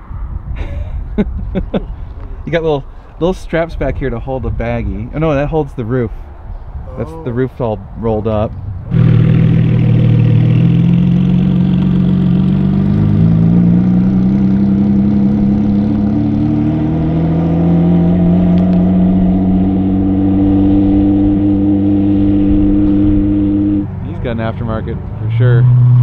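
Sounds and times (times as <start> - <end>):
sports car engine pulling away: 8.9 - 26.0.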